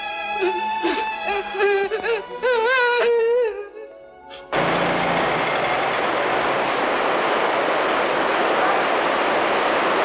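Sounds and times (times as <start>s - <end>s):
heavy rain falling: 4.6s - 10.0s.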